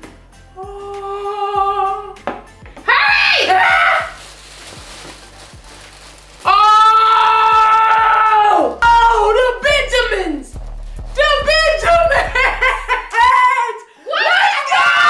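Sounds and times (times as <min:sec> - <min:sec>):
music: 0:00.0 - 0:14.0.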